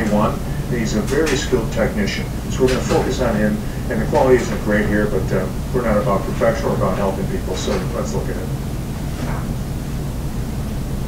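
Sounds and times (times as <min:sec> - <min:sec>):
even hiss: 0:00.0 - 0:08.6.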